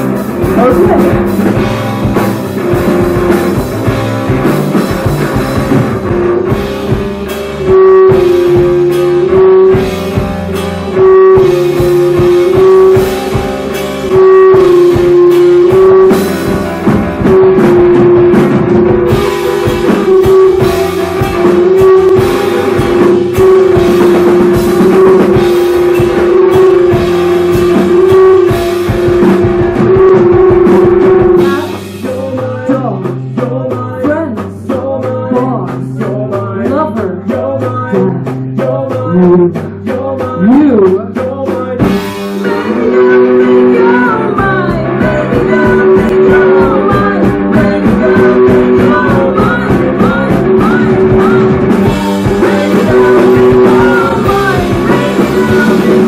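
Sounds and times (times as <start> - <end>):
busy drumming: 0.0 - 56.0
live rock band playing: 0.0 - 56.0.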